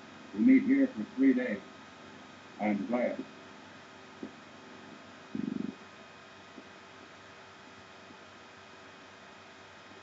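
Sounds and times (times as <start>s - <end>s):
old film soundtrack hiss and hum: 0.0s - 10.0s
man's low rattly vocal sound: 5.3s - 5.8s.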